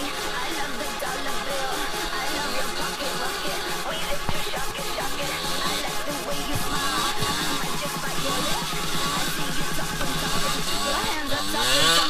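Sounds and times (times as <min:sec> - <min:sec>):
dirt bike engine revving: 0:00.0 - 0:12.0.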